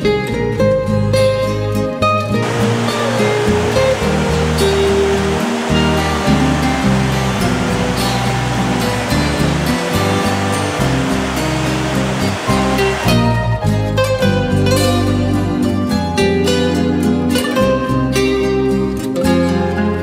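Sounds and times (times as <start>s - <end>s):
background music with low notes: 0.0s - 20.0s
stream rushing over rocks: 2.4s - 13.3s.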